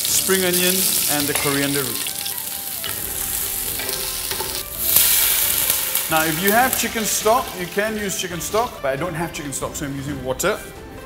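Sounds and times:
aromatics sizzling in hot oil: 0.0 - 8.8.

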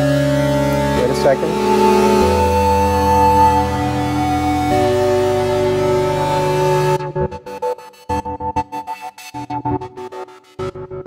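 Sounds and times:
synthesizer chords: 0.0 - 11.0.

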